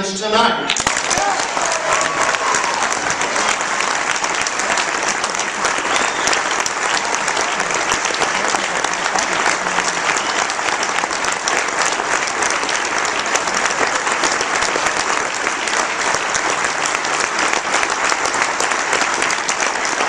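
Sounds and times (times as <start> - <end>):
large audience applauding: 0.7 - 20.0.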